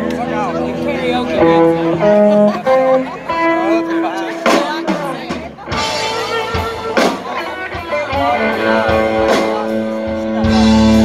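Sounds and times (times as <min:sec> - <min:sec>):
electric blues guitar solo: 0:00.0 - 0:11.0
live band: 0:00.0 - 0:11.0.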